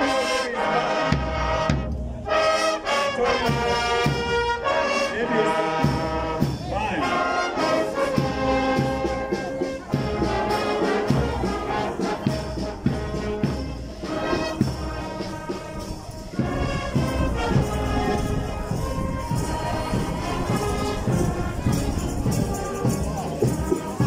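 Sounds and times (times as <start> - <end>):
marching brass band playing: 0.0 - 24.0.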